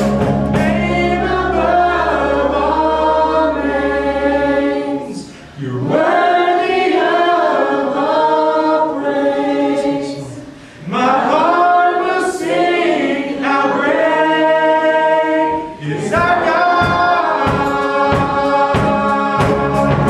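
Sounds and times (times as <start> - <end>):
people singing worship song: 0.0 - 20.0
praise band playing: 0.0 - 20.0.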